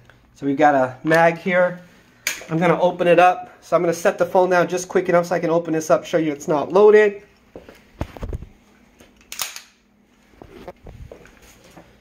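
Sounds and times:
pistol slide metallic clack: 0:09.2 - 0:09.8.

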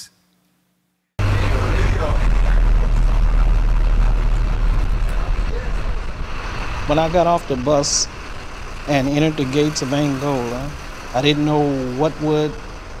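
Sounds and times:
bus engine rumbling: 0:01.2 - 0:13.0
road noise: 0:01.2 - 0:13.0.

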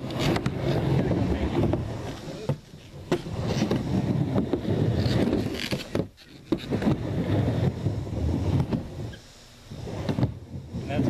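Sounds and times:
skateboard wheels rumbling on ramp: 0:00.0 - 0:11.0.

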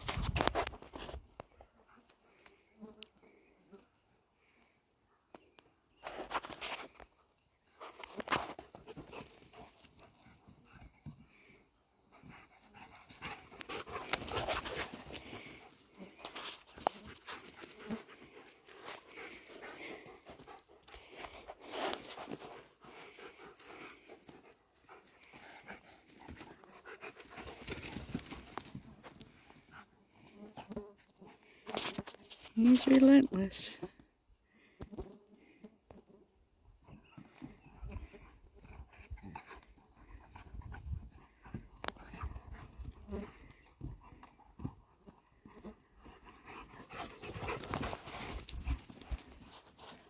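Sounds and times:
dogs panting: 0:07.8 - 0:31.7, 0:36.8 - 0:50.0.

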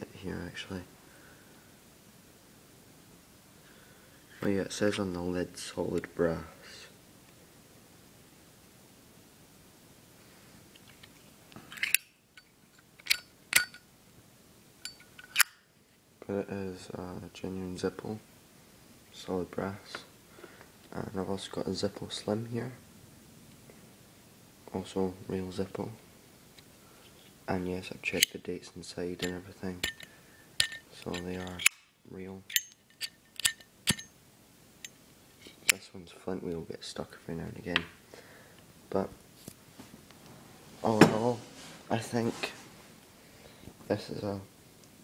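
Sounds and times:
metal lighter cases clinking: 0:11.6 - 0:13.8, 0:14.8 - 0:15.6, 0:28.0 - 0:28.4, 0:29.2 - 0:31.9, 0:32.5 - 0:34.1.

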